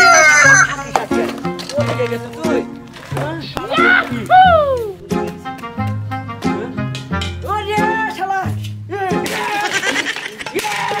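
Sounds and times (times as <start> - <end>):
plucked guitar-like notes: 3.2 - 7.9.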